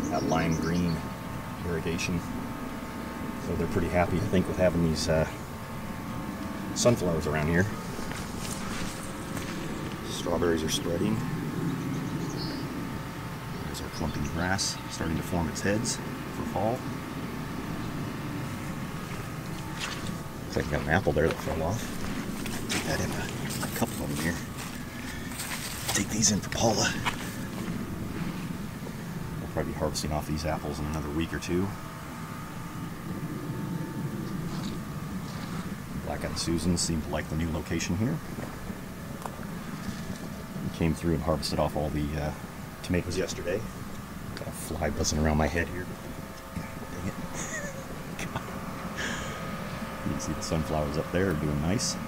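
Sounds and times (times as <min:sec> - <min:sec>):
faint hum: 0:00.0 - 0:52.0
low outdoor rumble: 0:00.0 - 0:52.0.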